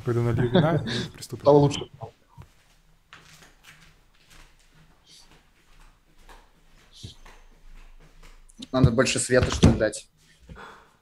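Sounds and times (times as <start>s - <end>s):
faint knocks and rustling: 2.3s - 10.6s.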